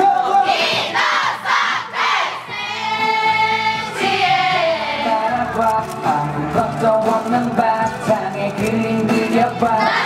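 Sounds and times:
voices shouting in rhythm: 0:00.0 - 0:05.0
pop song backing music: 0:00.0 - 0:10.0.

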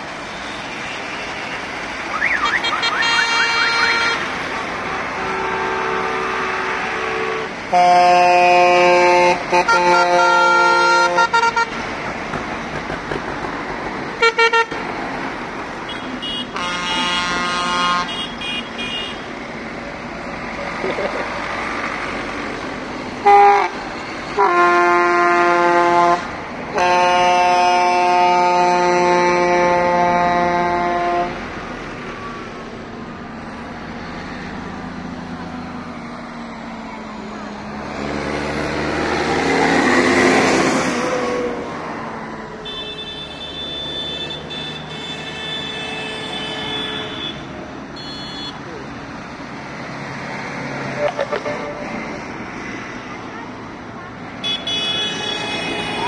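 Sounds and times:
tractor horns honking: 0:00.4 - 0:11.9, 0:14.1 - 0:14.9, 0:15.8 - 0:19.4, 0:23.2 - 0:31.5, 0:42.6 - 0:48.8, 0:50.9 - 0:52.4, 0:54.4 - 0:56.0
tractor engines running: 0:19.2 - 0:25.4, 0:45.4 - 0:54.4.

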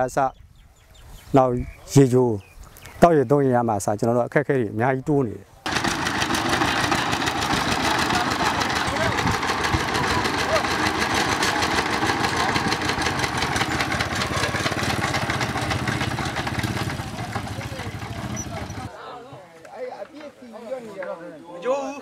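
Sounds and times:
diesel engine chugging: 0:05.7 - 0:18.9
faint voices: 0:07.1 - 0:14.8, 0:17.0 - 0:19.4.

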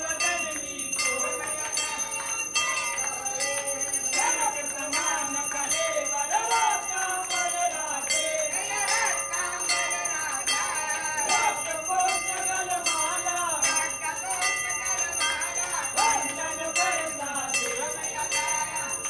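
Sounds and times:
temple bell ringing: 0:00.0 - 0:19.0
voices singing: 0:00.0 - 0:19.0.

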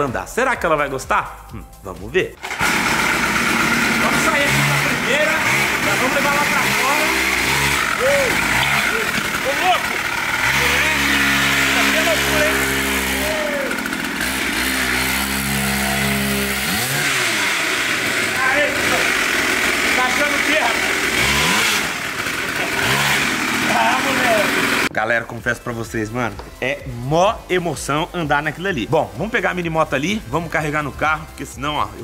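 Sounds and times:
small motorcycle engine revving: 0:02.4 - 0:24.9.

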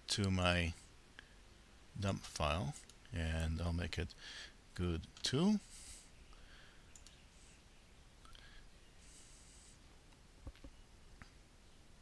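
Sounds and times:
computer mouse click: 0:06.9 - 0:07.2.

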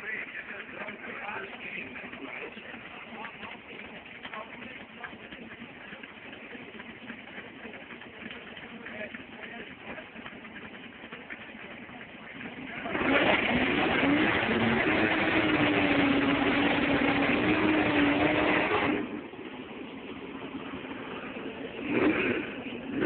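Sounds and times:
car engine idling and revving: 0:00.0 - 0:23.0.

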